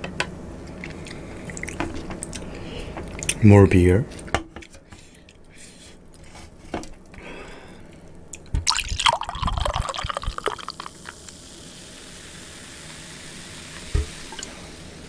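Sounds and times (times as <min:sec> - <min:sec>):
beer pouring into a glass: 0:08.6 - 0:12.2
foam fizzing: 0:08.7 - 0:15.0.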